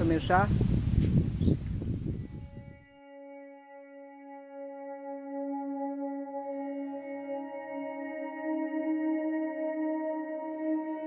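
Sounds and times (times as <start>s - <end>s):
wind buffeting microphone: 0.0s - 2.8s
soft ambient music tones: 2.1s - 11.0s.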